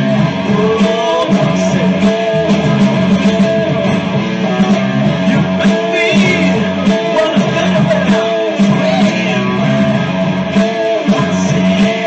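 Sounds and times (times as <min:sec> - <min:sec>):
electric guitar with string bends: 0:00.0 - 0:12.0.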